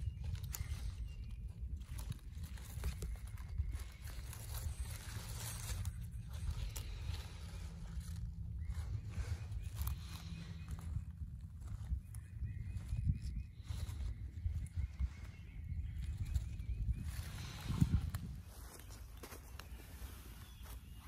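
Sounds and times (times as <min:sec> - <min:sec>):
leaves rustling and crackling: 0:00.0 - 0:21.0
wind rumbling on microphone: 0:00.0 - 0:21.0.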